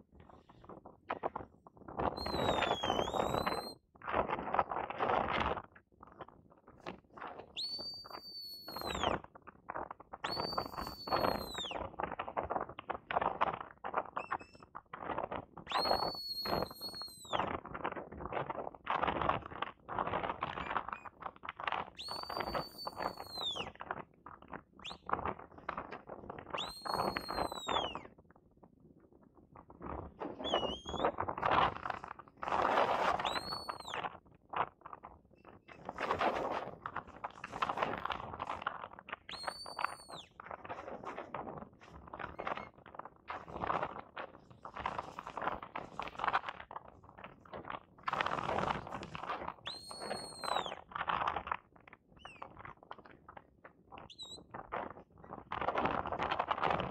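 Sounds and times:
shepherd's whistle: 2.2 - 3.8, 7.6 - 9.2, 10.2 - 11.8, 14.2 - 14.6, 15.7 - 17.5, 20.6 - 21.1, 22.0 - 23.8, 24.8 - 25.1, 26.5 - 28.1, 30.4 - 31.2, 33.0 - 34.1, 39.3 - 40.3, 42.2 - 42.7, 49.6 - 50.8, 52.2 - 52.4, 54.1 - 54.4.

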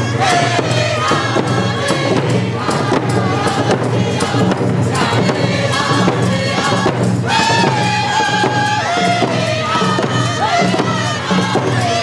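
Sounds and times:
frame drums beating steadily: 0.0 - 12.0
group singing in chorus: 0.0 - 12.0.

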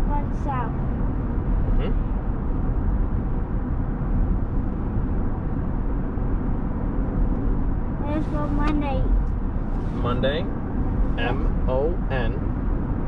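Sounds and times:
road and engine noise in cab: 0.0 - 13.0.

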